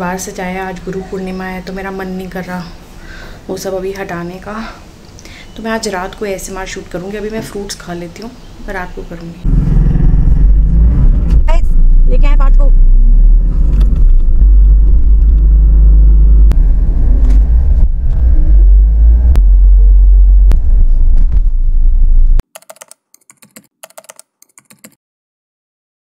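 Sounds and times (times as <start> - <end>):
engine and road rumble: 8.4 - 22.4
sharp clicks: 22.4 - 25.0.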